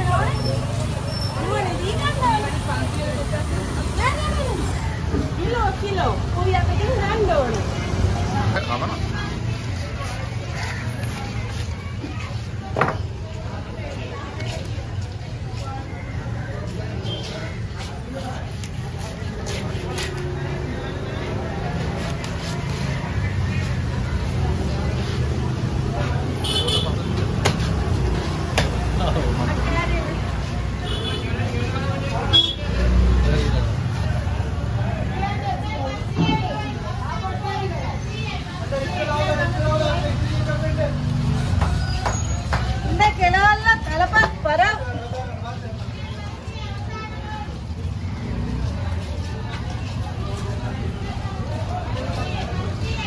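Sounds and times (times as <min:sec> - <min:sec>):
low traffic rumble: 0:00.0 - 0:53.0
people talking: 0:00.0 - 0:53.0.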